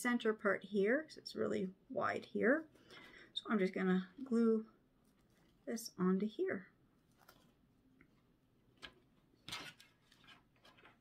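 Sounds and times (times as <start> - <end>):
soft rustle of hands handling ribbon: 4.9 - 5.8, 7.0 - 8.3.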